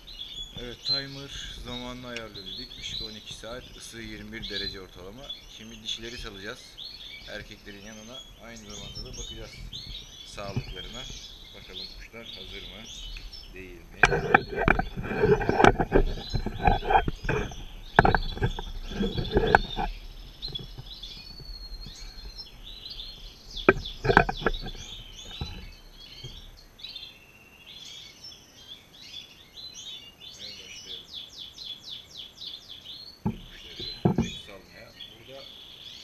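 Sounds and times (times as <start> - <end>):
finches chirping and twittering: 0.0 - 36.0
sharp handling knocks: 13.9 - 22.5, 23.1 - 26.5, 33.2 - 34.5.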